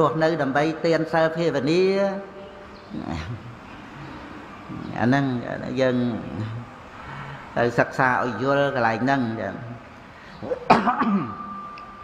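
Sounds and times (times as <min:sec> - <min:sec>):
man speaking: 0:00.0 - 0:03.6, 0:04.7 - 0:06.8, 0:07.6 - 0:11.4
faint room noise: 0:00.0 - 0:12.0
low vocal sound: 0:06.1 - 0:07.5.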